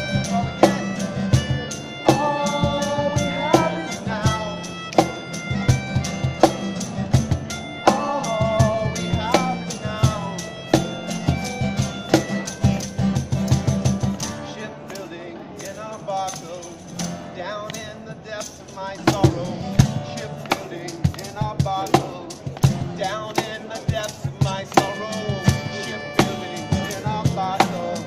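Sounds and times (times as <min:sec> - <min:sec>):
wind instrument held notes: 0:00.0 - 0:14.3, 0:24.5 - 0:28.0
acoustic guitars strummed: 0:00.0 - 0:28.0
cajon beat: 0:00.0 - 0:28.0
person singing: 0:01.4 - 0:05.2, 0:07.6 - 0:11.0, 0:17.4 - 0:28.0.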